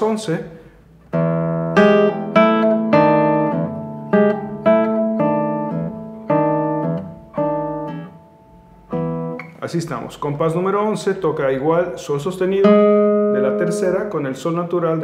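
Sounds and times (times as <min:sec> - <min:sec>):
classical guitar played slowly: 0:00.9 - 0:09.6, 0:12.5 - 0:14.5.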